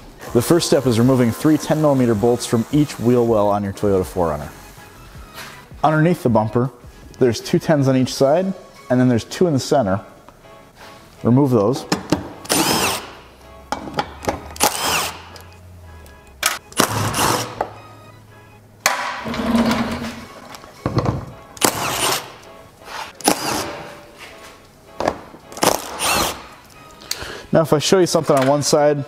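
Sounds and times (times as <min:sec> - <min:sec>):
background music: 0:00.0 - 0:29.0
cordless power tool spinning bolts: 0:12.5 - 0:13.1, 0:14.6 - 0:15.2, 0:21.6 - 0:22.3, 0:25.6 - 0:26.4.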